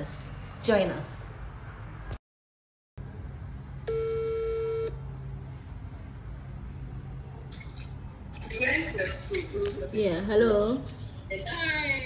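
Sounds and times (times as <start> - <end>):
phone ringback beep: 3.9 - 4.9.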